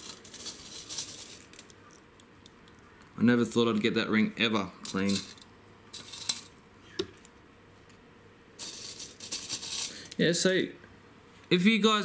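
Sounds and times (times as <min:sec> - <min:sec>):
coins and jewellery clinking: 0:00.0 - 0:01.6, 0:04.9 - 0:05.4, 0:06.0 - 0:06.5, 0:08.6 - 0:10.2.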